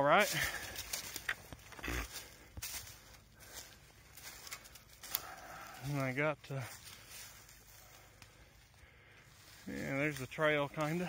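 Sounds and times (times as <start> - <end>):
footsteps in dry leaves: 0.0 - 11.0.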